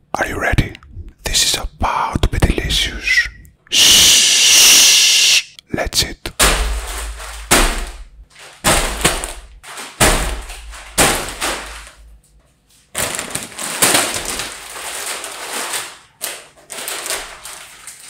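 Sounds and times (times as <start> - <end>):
bags thudding on table: 6.4 - 12.2
plastic snack bags crinkling: 6.6 - 18.0.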